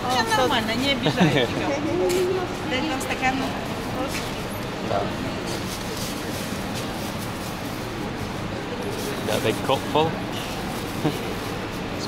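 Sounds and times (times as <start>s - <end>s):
background chatter and bustle: 0.0s - 12.0s.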